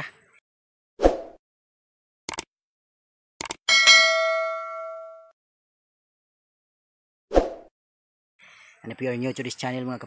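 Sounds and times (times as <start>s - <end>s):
bright bell ding: 3.7s - 5.3s.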